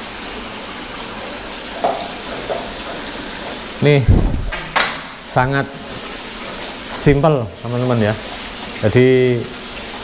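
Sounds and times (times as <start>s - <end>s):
waterfall splashing into pond: 0.0s - 10.0s.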